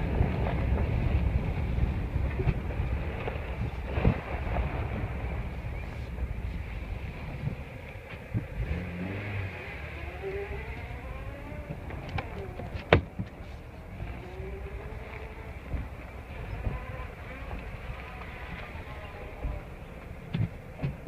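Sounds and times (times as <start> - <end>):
car engine at low revs: 0.0 - 21.0
whine rising in pitch: 5.4 - 12.8.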